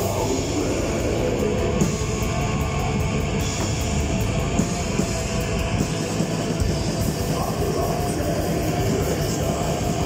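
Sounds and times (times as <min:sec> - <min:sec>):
live metal band playing: 0:00.0 - 0:10.0.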